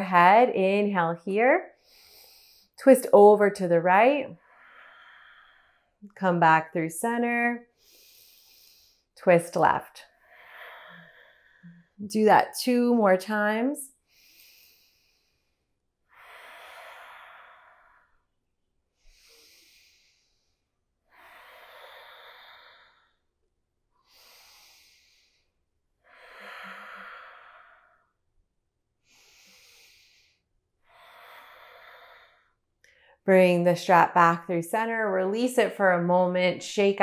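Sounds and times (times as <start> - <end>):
woman breathing slowly: 1.7 - 2.8, 4.4 - 6.0, 7.6 - 9.2, 10.1 - 12.0, 14.0 - 18.4, 19.0 - 23.4, 24.0 - 28.2, 29.0 - 33.2.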